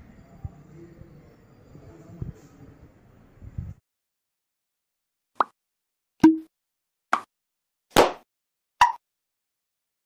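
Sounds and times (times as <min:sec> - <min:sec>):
pop sound effects: 0:05.4 - 0:05.6, 0:06.2 - 0:06.5, 0:07.9 - 0:08.2, 0:08.8 - 0:09.0.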